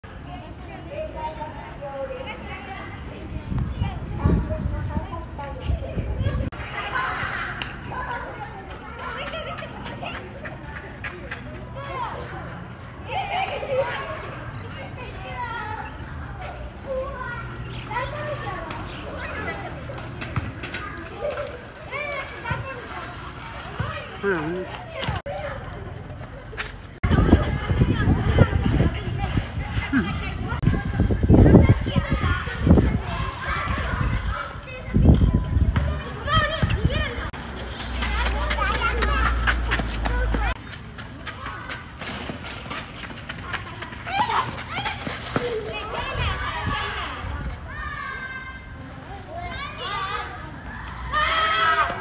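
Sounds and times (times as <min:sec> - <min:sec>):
children chattering and calling out: 0:00.0 - 0:52.0
children calling out: 0:43.4 - 0:52.0.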